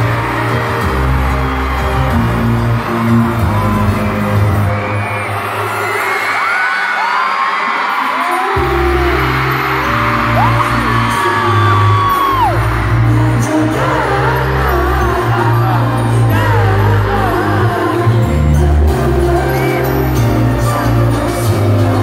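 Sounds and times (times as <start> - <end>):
fans screaming: 0.0 - 22.0
live pop music with heavy bass: 0.0 - 22.0.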